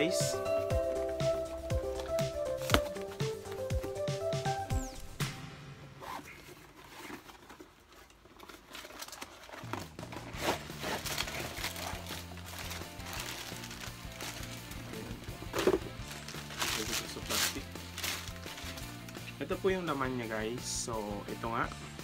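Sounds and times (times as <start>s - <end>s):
background music with bass line: 0.0s - 5.9s, 9.7s - 22.0s
cardboard box rustling: 6.0s - 19.2s
plastic packaging crinkling: 6.0s - 19.4s.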